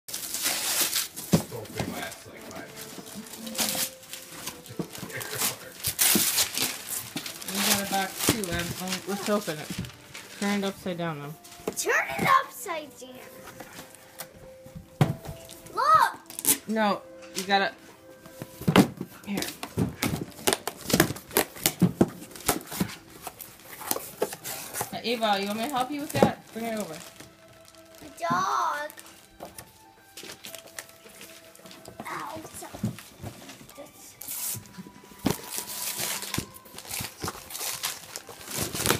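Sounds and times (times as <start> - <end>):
wrapping paper tearing and crinkling: 0.1 - 10.7, 16.2 - 16.6, 19.6 - 29.4, 30.2 - 38.9.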